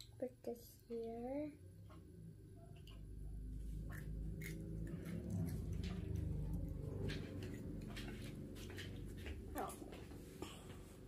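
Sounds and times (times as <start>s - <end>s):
child chewing: 3.6s - 10.8s.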